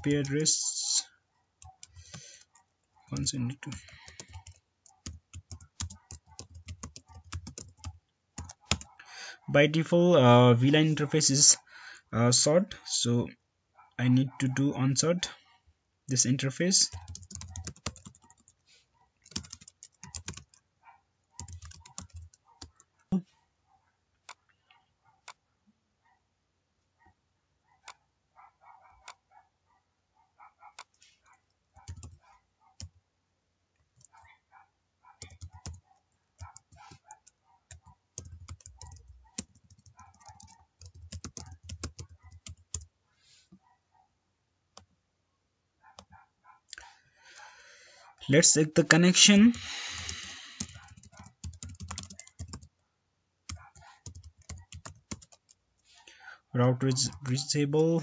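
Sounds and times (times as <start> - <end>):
keyboard typing: 1.6 - 8.9, 16.9 - 18.6, 19.2 - 20.7, 21.4 - 22.9, 31.8 - 32.2, 32.8 - 33.0, 35.2 - 35.8, 36.4 - 42.9, 49.6 - 52.7, 53.5 - 55.6, 56.8 - 57.6.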